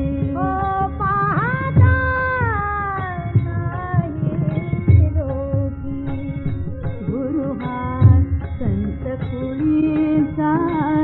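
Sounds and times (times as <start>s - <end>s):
tanpura drone: 0.0s - 11.0s.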